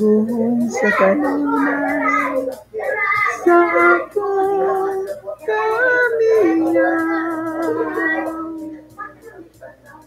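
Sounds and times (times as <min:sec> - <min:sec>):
person singing unaccompanied: 0:00.0 - 0:10.0.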